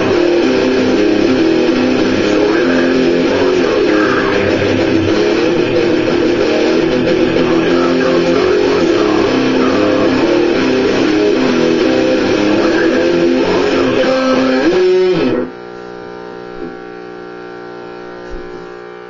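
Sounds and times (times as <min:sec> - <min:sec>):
electric guitar riff: 0:00.0 - 0:19.0.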